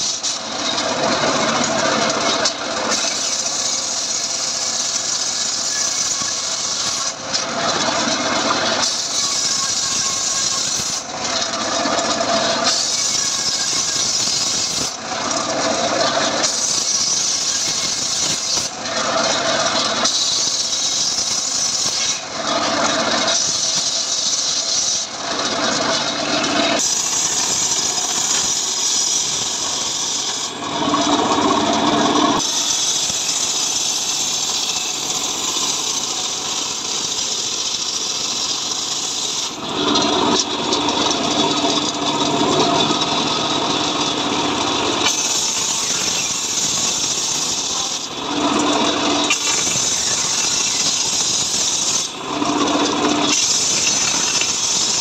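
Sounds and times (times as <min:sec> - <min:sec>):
circular saw ripping wood: 0:00.0 - 0:55.0.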